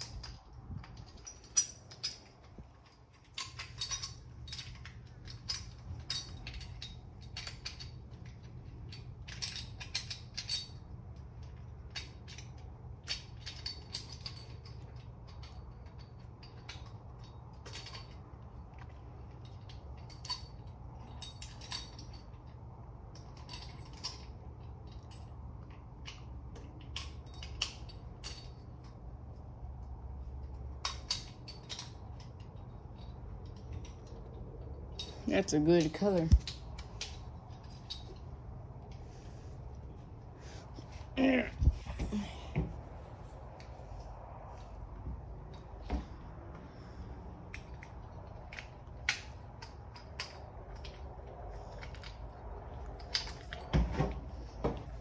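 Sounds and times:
metal tools clinking: 0.0 - 44.7, 45.4 - 55.0
steady low hum: 0.0 - 55.0.

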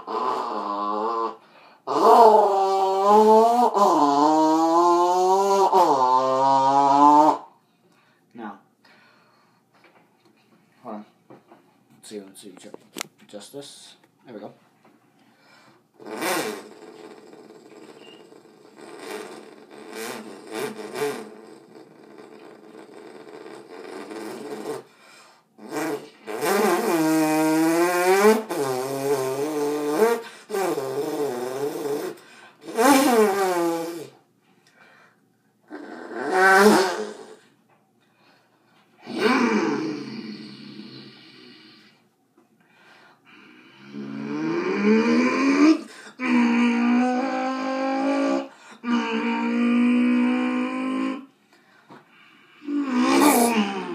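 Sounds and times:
mouth clicks and puffs: 16.0 - 25.0, 25.6 - 34.2.

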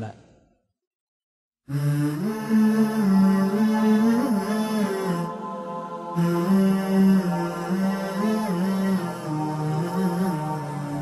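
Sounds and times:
person chanting long notes: 1.7 - 11.0.

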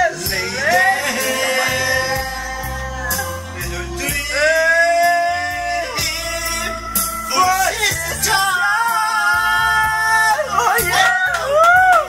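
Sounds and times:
backing music: 0.0 - 12.0
man singing karaoke: 0.0 - 12.0.

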